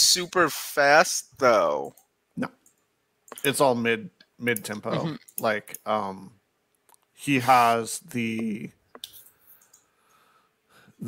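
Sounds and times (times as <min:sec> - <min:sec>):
man saying a word: 0:04.8 - 0:05.6
faint clicks: 0:08.9 - 0:09.9.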